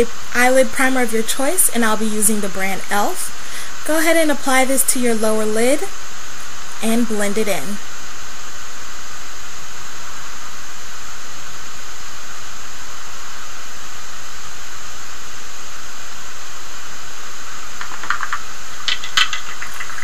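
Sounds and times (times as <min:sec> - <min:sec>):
loud steady hiss: 0:00.0 - 0:20.0.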